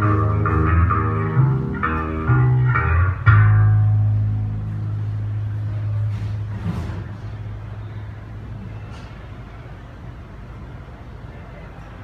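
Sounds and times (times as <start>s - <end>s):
low steady drone: 0.0s - 8.9s.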